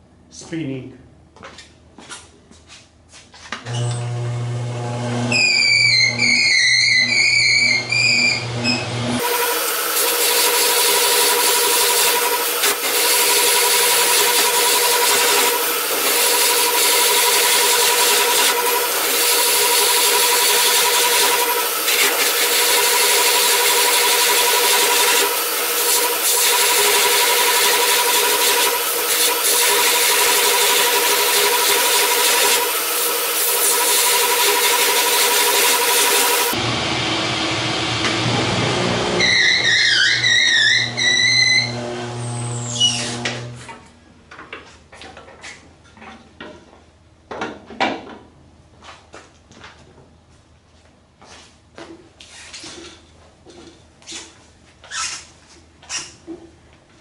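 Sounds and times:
lathe motor whine: 0:03.7 - 0:43.6
scraper scraping spinning wood: 0:09.2 - 0:36.6.

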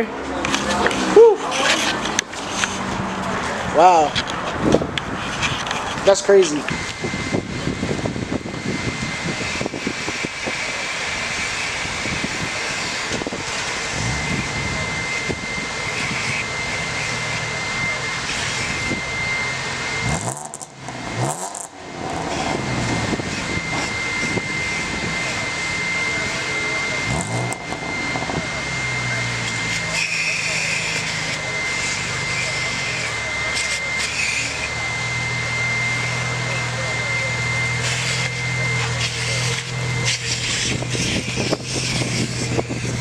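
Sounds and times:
car engines roaring: 0:00.0 - 0:43.0
engine revving: 0:00.0 - 0:43.0
thin high whine: 0:00.0 - 0:43.0.

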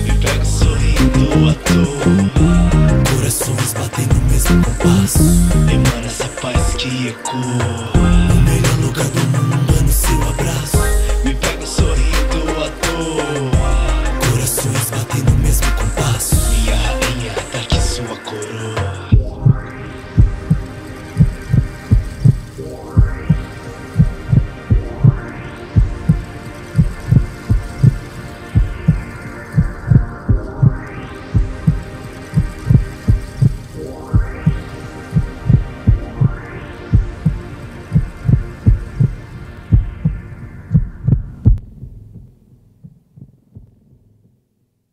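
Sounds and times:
deep heartbeat-like double thump: 0:00.0 - 0:01.5, 0:02.4 - 0:03.2, 0:04.1 - 0:05.9, 0:08.0 - 0:08.9, 0:09.7 - 0:10.2, 0:19.2 - 0:19.6, 0:20.2 - 0:22.4, 0:23.0 - 0:25.2, 0:25.8 - 0:28.0, 0:28.6 - 0:30.8, 0:31.4 - 0:31.8, 0:32.4 - 0:33.6, 0:34.2 - 0:34.6, 0:35.2 - 0:36.4, 0:37.0 - 0:37.4, 0:38.0 - 0:43.8
sustained synth chord: 0:00.0 - 0:03.3, 0:04.3 - 0:06.2, 0:08.0 - 0:14.2.

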